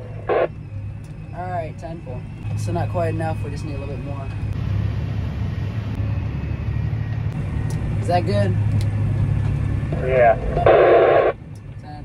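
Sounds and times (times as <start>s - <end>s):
tractor engine drone: 0.0s - 12.0s.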